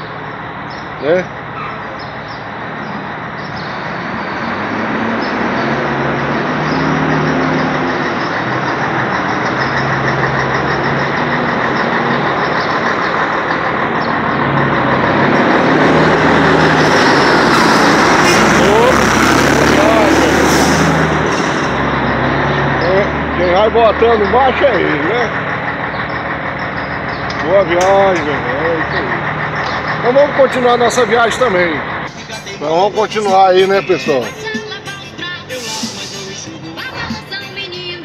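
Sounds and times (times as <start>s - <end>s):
diesel trucks running: 0.0s - 38.0s.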